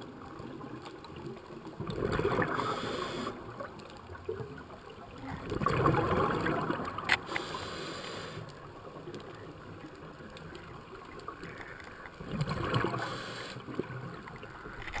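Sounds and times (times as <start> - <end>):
gurgle of exhaled bubbles: 0.2 - 7.5, 12.2 - 15.0
diver breathing through regulator: 2.5 - 3.4, 7.2 - 8.5, 12.8 - 13.7
steady hiss: 2.5 - 3.4, 7.2 - 8.8, 12.9 - 13.7.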